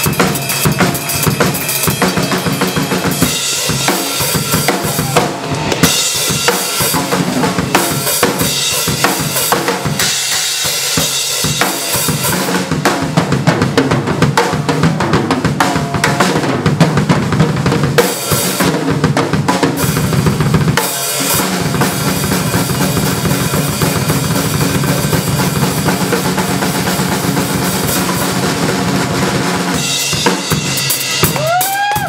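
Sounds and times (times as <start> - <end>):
cymbal crashes: 0.0 - 12.5
drum kit solo: 0.0 - 32.0.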